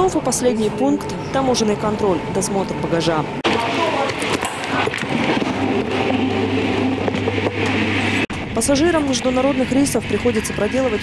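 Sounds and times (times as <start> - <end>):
conveyor belt running: 0.0 - 11.0
steady low hum: 0.0 - 11.0.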